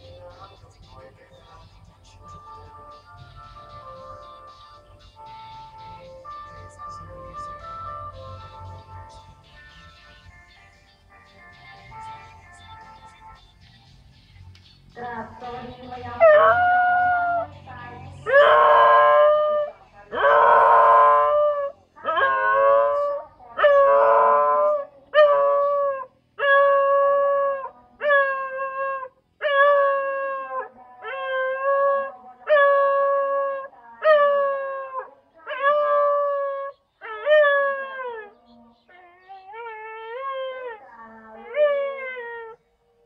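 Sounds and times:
dog howling: 16.1s - 17.5s, 18.2s - 43.0s.

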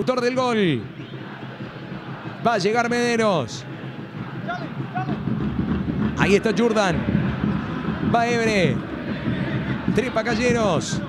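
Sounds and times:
stadium low rumble: 3.7s - 11.0s.

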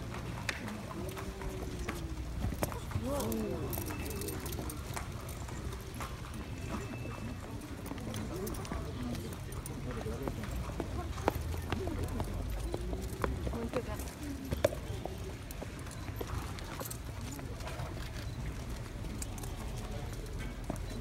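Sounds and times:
horse hooves clip-clopping: 0.0s - 21.0s
people talking: 0.4s - 18.0s.

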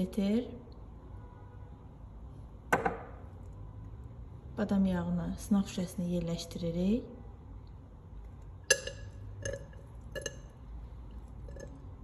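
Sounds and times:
glass pipette clinking on test tube: 8.7s - 10.6s.

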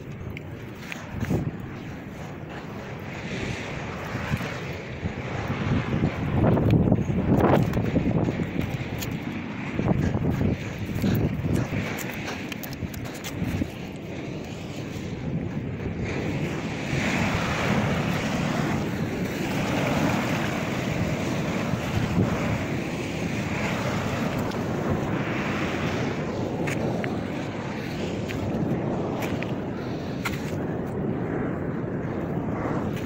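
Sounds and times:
surf washing over rocks: 0.0s - 33.0s
wind buffeting microphone: 0.0s - 33.0s.

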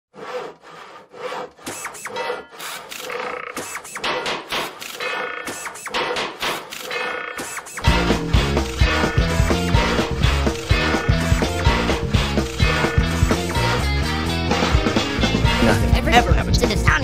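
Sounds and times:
hand saw cutting wood: 0.1s - 6.8s.

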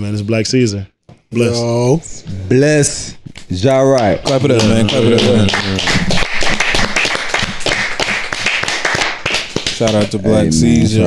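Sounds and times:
people clapping: 3.4s - 11.0s.

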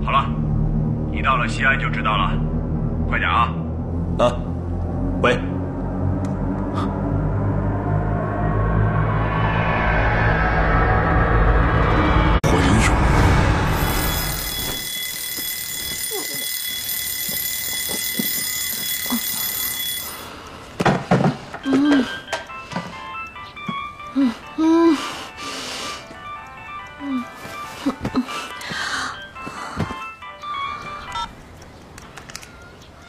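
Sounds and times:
electronic alarm ringing: 13.3s - 20.8s, 30.0s - 31.4s
phone ringtone melody: 13.6s - 20.8s, 21.6s - 31.5s.

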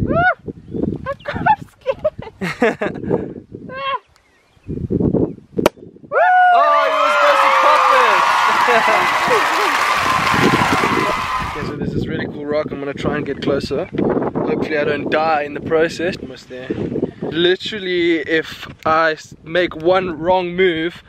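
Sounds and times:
people shrieking and cheering: 6.1s - 11.7s.

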